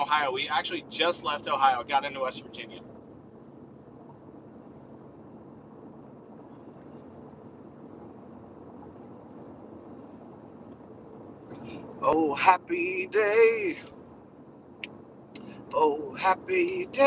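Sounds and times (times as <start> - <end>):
car road and engine noise: 0.0 - 17.0.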